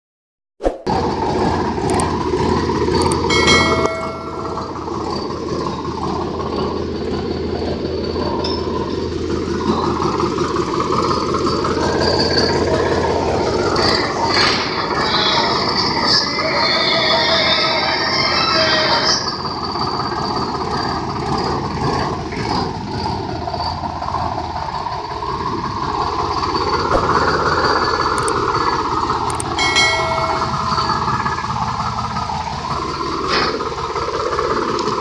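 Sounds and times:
tractor diesel engine idling: 1.0s - 35.0s
short ringing ding: 3.2s - 5.0s, 29.6s - 31.1s
metallic clinks: 29.3s - 31.1s.

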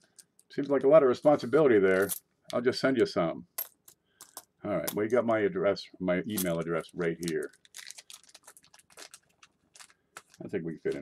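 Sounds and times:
small clicks and light crackles: 7.3s - 10.4s.

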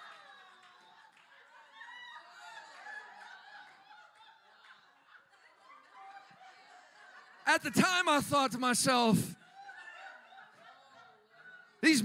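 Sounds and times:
faint audience laughter: 9.4s - 11.8s.

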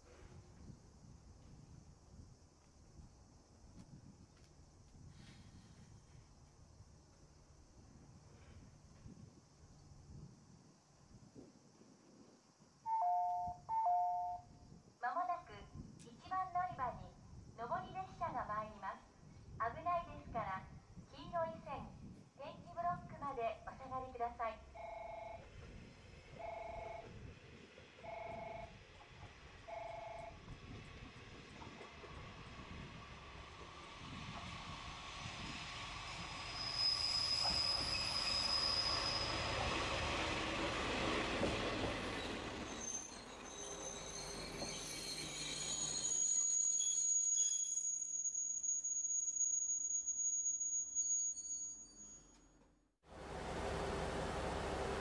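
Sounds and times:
short beeps: 12.9s - 14.5s
diesel railcar running: 22.8s - 51.4s, 53.0s - 55.0s
brakes squealing: 33.4s - 52.4s.

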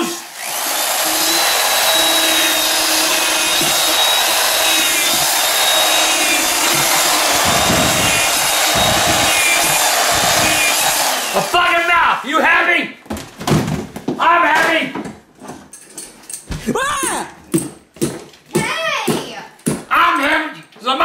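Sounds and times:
cordless drill boring into pumpkin: 0.0s - 12.1s
low rumble of drill bit: 0.2s - 11.4s.

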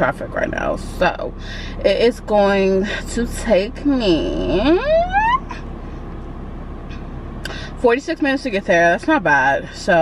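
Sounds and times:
low hum in car cabin: 0.0s - 10.0s.

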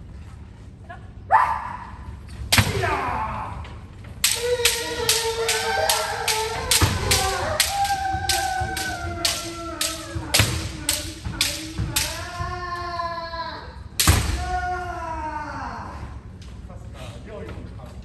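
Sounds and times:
drawn-out shouts: 4.2s - 13.6s.

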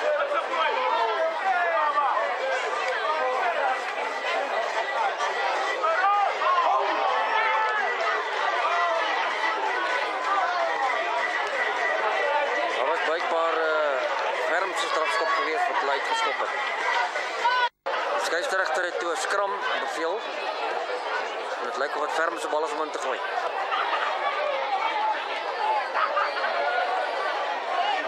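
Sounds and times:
overlapping voices calling out: 0.0s - 28.0s.

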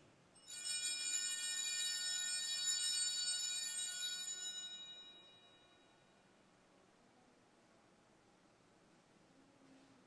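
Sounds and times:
small bells ringing: 0.4s - 6.1s.

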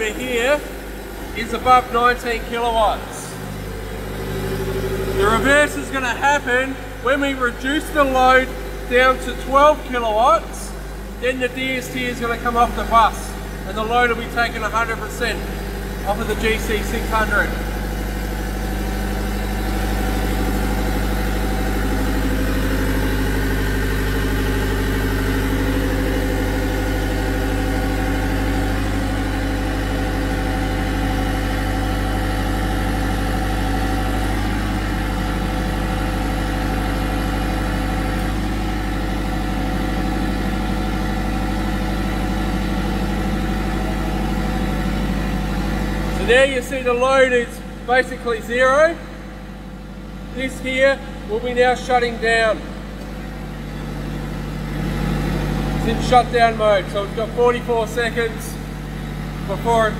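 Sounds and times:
diesel generators droning: 0.0s - 59.9s.

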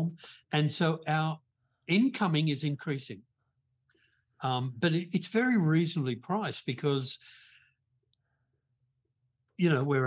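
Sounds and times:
man speaking: 0.0s - 3.3s, 4.4s - 7.2s, 9.6s - 10.0s.

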